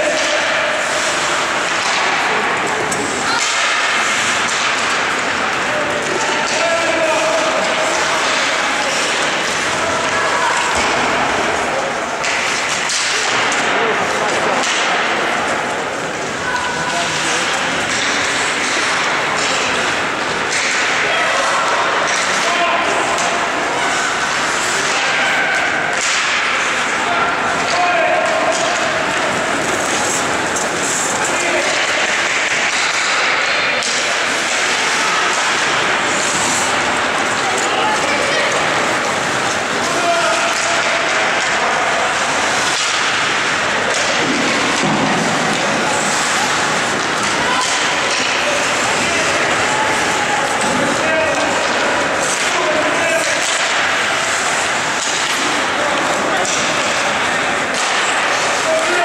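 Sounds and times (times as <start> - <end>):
hockey sticks and puck clacking: 0.0 - 59.0
indistinct voices: 0.0 - 59.0
skates scraping ice: 0.0 - 59.0.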